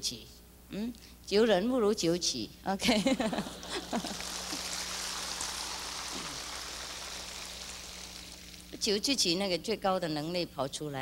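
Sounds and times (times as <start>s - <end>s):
large audience applauding: 3.4s - 8.8s.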